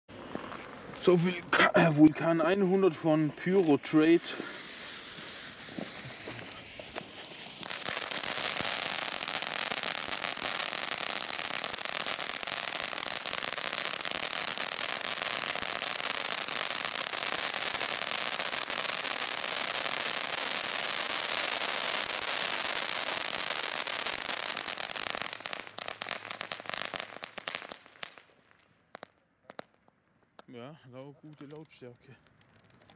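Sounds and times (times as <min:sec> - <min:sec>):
firework crackling: 0:00.1 - 0:29.8
firework sparks hissing: 0:00.2 - 0:28.1.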